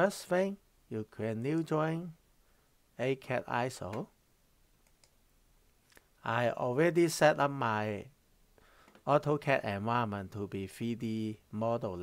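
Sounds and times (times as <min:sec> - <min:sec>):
faint computer mouse clicks: 0:04.8 - 0:05.2.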